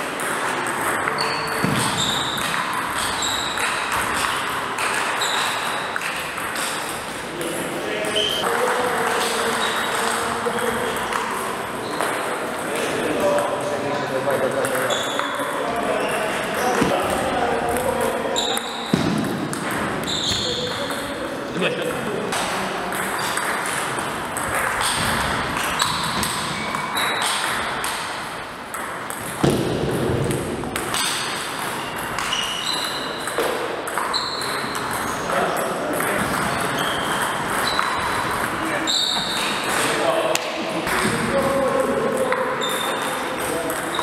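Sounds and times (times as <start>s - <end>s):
table tennis ball pinging: 0.1s - 13.7s, 14.4s - 44.0s.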